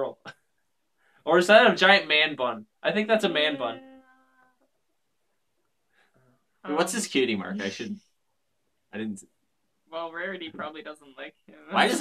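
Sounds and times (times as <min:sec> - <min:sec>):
faint held spoken vowel: 0:03.3 - 0:04.5, 0:07.4 - 0:08.0.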